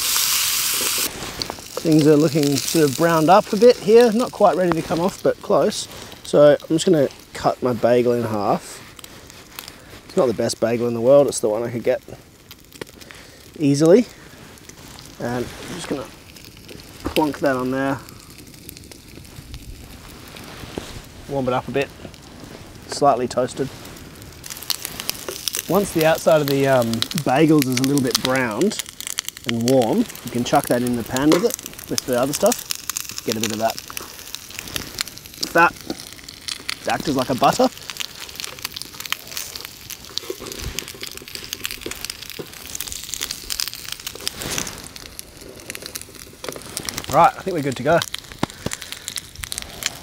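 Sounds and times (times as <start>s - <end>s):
bacon frying: 0.0s - 50.0s
fire crackling and popping: 0.0s - 50.0s
food sizzling in a pan: 0.0s - 50.0s.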